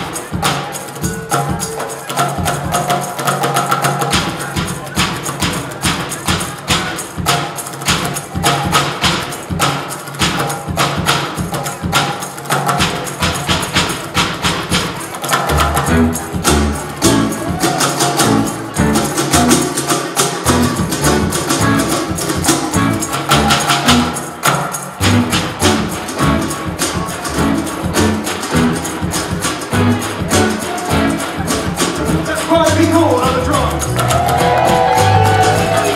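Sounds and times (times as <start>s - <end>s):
fast drumming on plastic tubs: 0.0s - 35.9s
plucked low bass notes: 15.5s - 17.5s, 20.5s - 24.2s, 25.0s - 29.1s.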